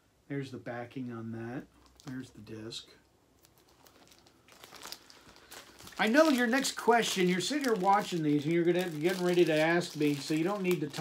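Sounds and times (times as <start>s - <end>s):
plastic sleeve crinkling: 1.6s - 11.0s.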